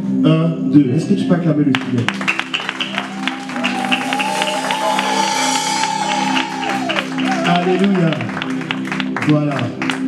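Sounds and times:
keyboard worship music: 0:00.0 - 0:10.0
congregation clapping and cheering: 0:01.7 - 0:10.0
long high held note: 0:02.7 - 0:08.7.

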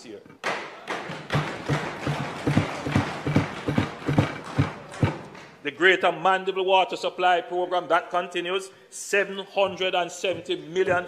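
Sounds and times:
hands thumping on wooden desks: 0:00.4 - 0:05.6.

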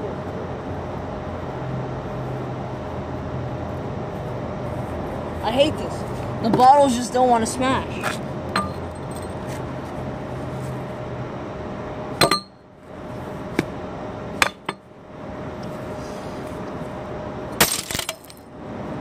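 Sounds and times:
glass bottle breaking: 0:17.6 - 0:18.4.

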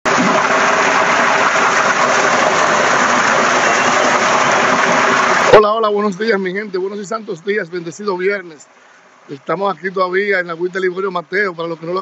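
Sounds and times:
water splashing into a pool: 0:00.0 - 0:12.0.

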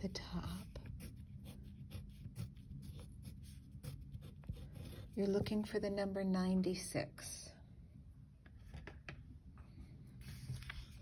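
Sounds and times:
pencil scratching on paper: 0:00.0 - 0:05.4.

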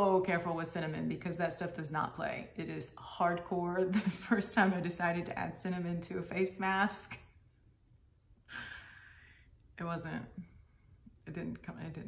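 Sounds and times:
woman breathing in: 0:08.5 - 0:09.6.

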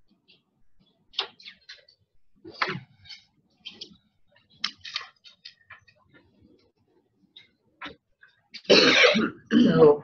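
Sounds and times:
paper rustling: 0:01.2 - 0:06.4.

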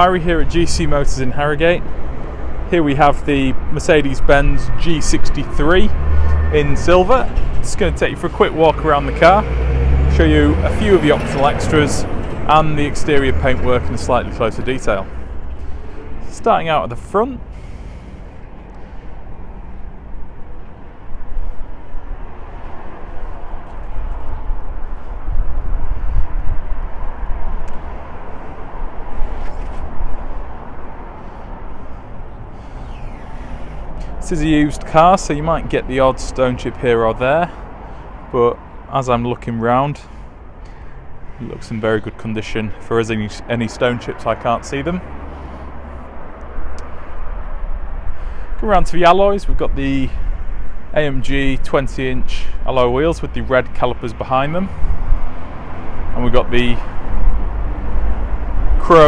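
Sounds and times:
wind buffeting microphone: 0:18.2 - 0:36.2, 0:54.6 - 0:58.9.

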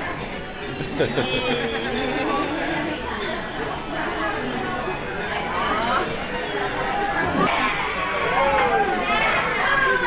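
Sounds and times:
dining room chatter: 0:00.0 - 0:10.0.

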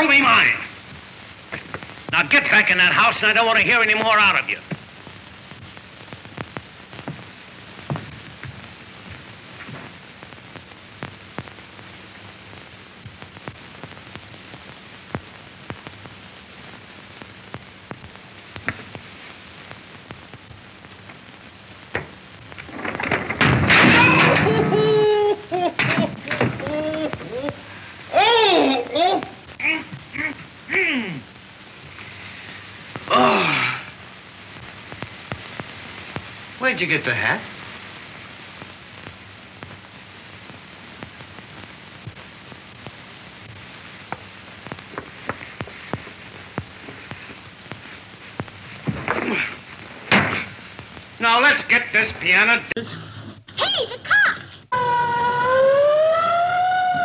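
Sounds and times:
film soundtrack hiss: 0:00.0 - 0:57.0
clicks and crackles: 0:00.8 - 0:02.2, 0:03.9 - 0:28.1, 0:28.8 - 0:33.2, 0:34.0 - 0:36.6, 0:37.5 - 0:51.2.

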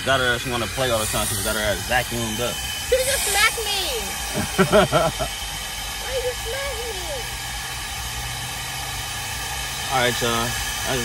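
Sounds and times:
vacuum humming and hissing: 0:00.0 - 0:11.0.

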